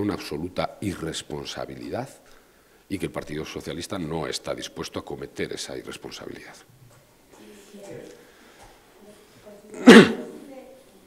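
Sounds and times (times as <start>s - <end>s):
loud cough: 9.7s - 10.4s.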